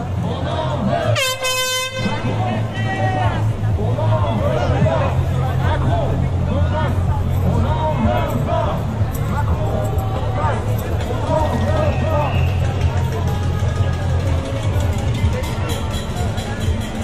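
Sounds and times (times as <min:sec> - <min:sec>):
steady low rumble: 0:00.0 - 0:15.4
crowd talking and calling out: 0:00.0 - 0:17.0.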